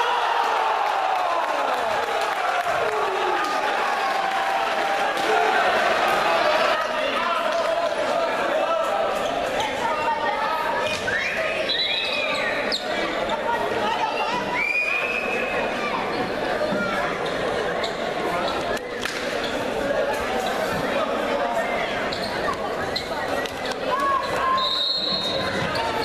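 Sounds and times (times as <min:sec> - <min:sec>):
people shouting and talking: 0:00.0 - 0:26.0.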